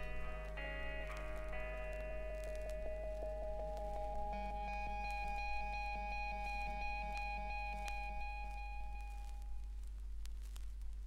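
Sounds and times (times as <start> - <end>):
ringing chord from vinyl record: 0.0 - 10.7.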